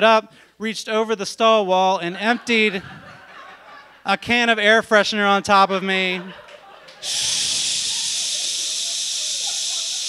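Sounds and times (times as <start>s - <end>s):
man making shh hiss: 7.0s - 10.0s.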